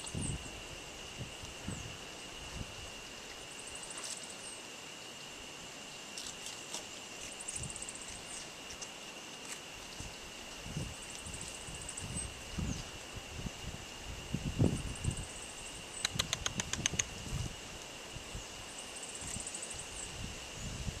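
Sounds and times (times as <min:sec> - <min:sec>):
high insect drone: 0:00.0 - 0:21.0
sharp clicks: 0:16.0 - 0:17.2.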